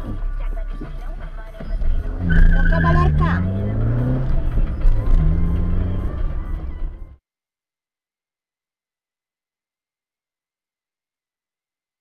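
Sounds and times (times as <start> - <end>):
car engine and road rumble: 0.0 - 7.2.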